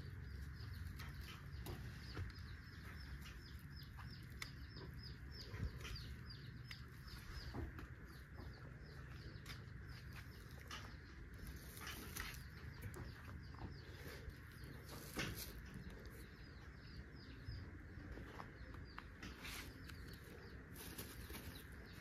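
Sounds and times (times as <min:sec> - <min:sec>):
dry straw rustling and snapping: 0:00.2 - 0:07.9, 0:09.4 - 0:13.1, 0:14.6 - 0:16.3, 0:19.0 - 0:22.0.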